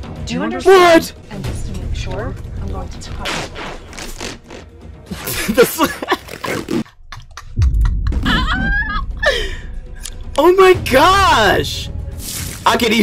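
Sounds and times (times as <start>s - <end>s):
background music: 0.0s - 13.0s
man laughing: 5.1s - 9.6s.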